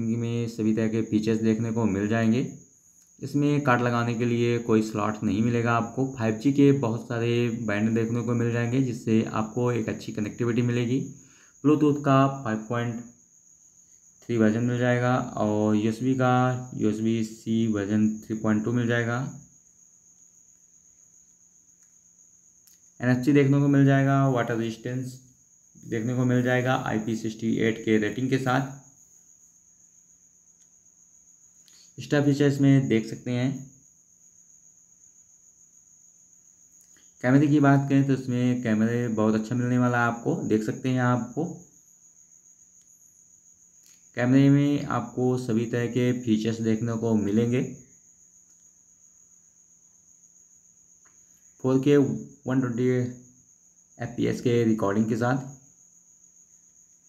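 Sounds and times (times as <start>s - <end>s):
faint low hum: 0.0s - 57.0s
steady high-pitched whine: 0.0s - 57.0s.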